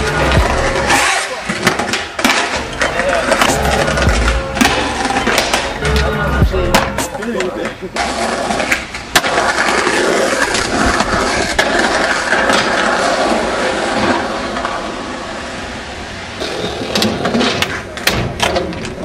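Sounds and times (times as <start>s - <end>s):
skateboard clacks: 0.0s - 6.1s, 6.7s - 15.3s, 16.4s - 19.0s
skateboard wheels rolling on pavement: 0.0s - 19.0s.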